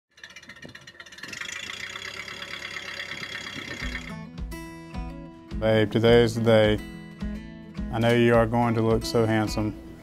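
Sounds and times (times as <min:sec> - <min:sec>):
film projector whirring: 0:00.2 - 0:04.1
guitar music: 0:02.6 - 0:10.0.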